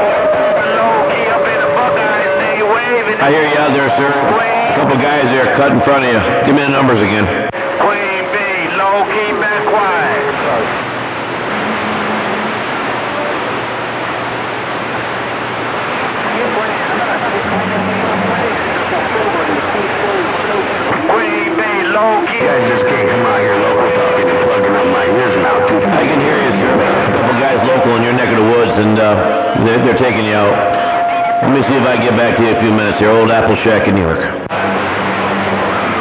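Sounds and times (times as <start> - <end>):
whistle-like radio tone: 0.0 - 10.3, 22.4 - 34.4
garbled radio voices: 0.0 - 13.6, 16.1 - 34.8
radio static: 0.0 - 36.0.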